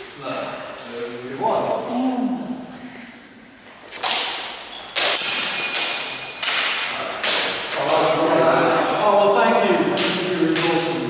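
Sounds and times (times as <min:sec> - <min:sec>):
swords clashing: 0:05.0 - 0:07.9.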